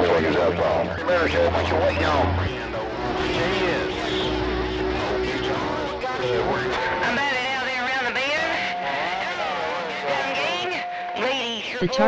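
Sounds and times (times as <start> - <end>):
garbled radio voices: 0.0 - 12.0
radio whistle tones: 1.0 - 12.0.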